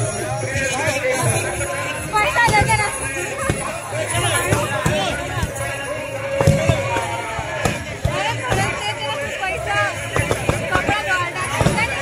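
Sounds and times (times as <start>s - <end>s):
music: 0.0s - 12.0s
voices: 0.0s - 12.0s
firecrackers bursting: 2.4s - 12.0s.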